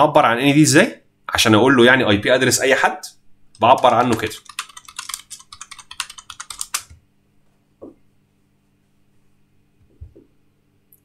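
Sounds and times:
computer keyboard typing: 3.5 - 7.0.

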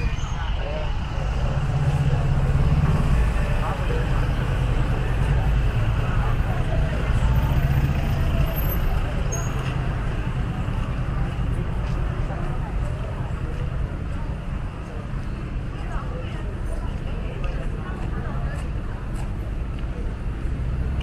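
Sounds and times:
faint voices: 0.0 - 21.0
vehicle engine rumbling: 0.0 - 21.0.

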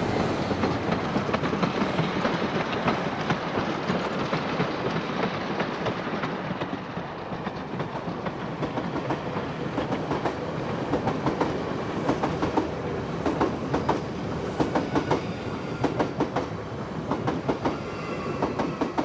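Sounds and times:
train rumbling: 0.0 - 19.0
train wheels clacking on rails: 0.0 - 19.0.

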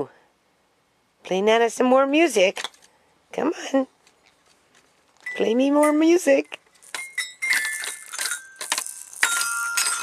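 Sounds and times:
toy glockenspiel notes: 5.2 - 6.0, 6.8 - 10.0.

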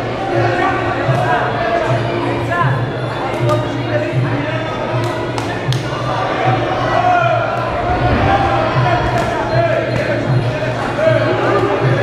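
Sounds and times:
voices calling out and talking: 0.0 - 12.0.

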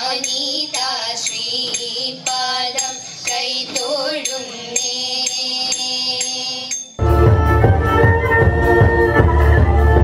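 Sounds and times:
small cymbals beating: 0.0 - 7.2.

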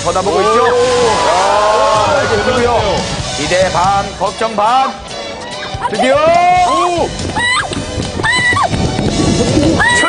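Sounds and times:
woman shrieking: 9.8 - 10.0.

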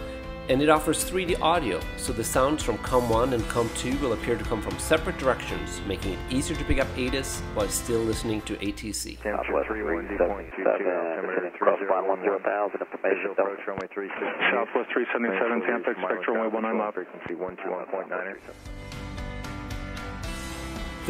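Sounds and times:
narrow-band radio voices talking: 9.2 - 18.5.

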